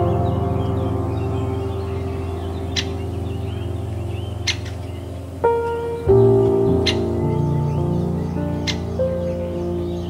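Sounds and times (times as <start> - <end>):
calm ambient music: 0.0 - 10.0
faint bird chirps: 0.0 - 10.0.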